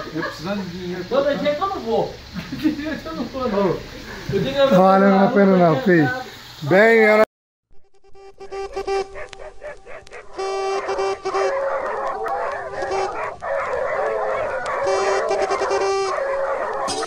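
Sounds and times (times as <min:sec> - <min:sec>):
dogs barking and baying: 0:08.5 - 0:17.0.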